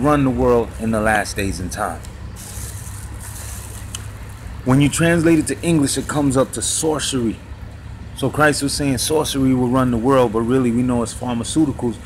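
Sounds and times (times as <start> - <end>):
street traffic rumble: 0.0 - 12.0
passing vehicle hiss: 1.7 - 9.6.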